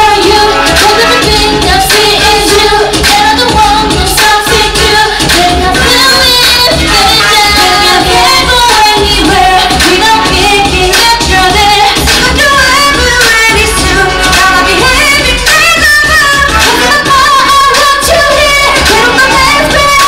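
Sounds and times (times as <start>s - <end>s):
backing track with heavy beat: 0.0s - 20.0s
women singing pop song: 0.0s - 20.0s.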